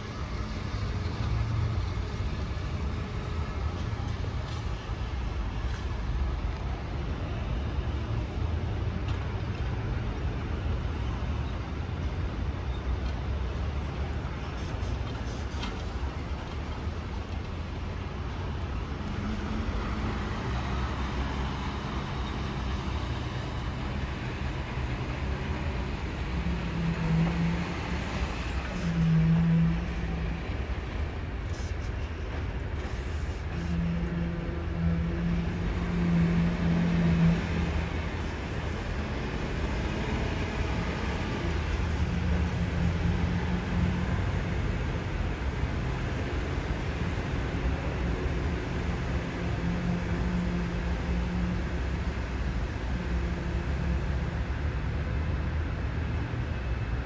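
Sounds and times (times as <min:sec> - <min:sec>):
construction machinery: 0:00.0 - 0:57.0
traffic rumble: 0:00.0 - 0:57.0.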